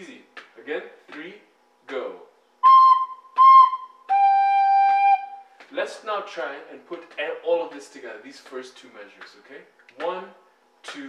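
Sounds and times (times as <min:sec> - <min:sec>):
recorder playing notes: 0:02.6 - 0:05.5.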